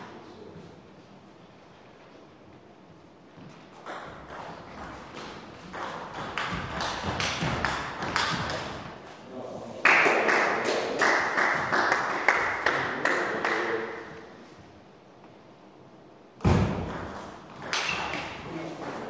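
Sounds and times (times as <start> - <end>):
spectators clapping and shouting: 9.8 - 13.8.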